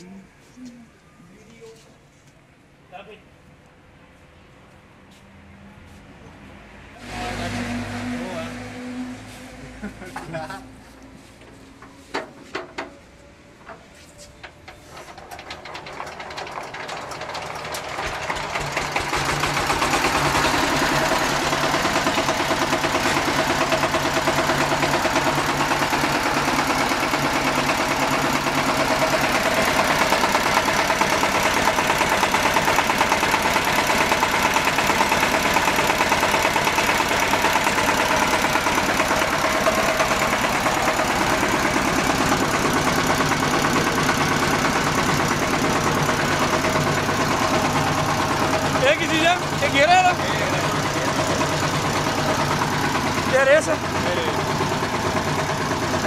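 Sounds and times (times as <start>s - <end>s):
diesel engine running: 6.9s - 56.0s.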